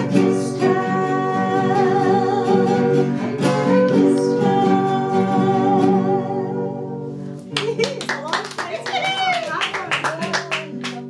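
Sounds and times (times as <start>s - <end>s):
people clapping: 7.5s - 11.0s.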